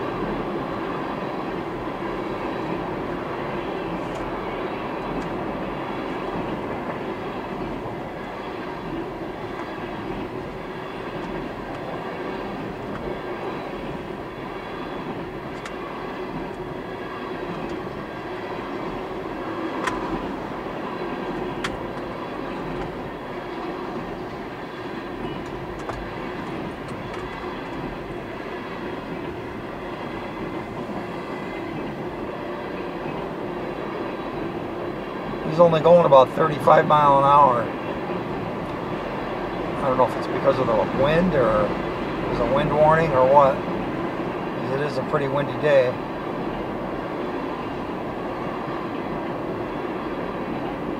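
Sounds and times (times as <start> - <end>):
train wheels rumbling on rails: 0.0 - 50.9.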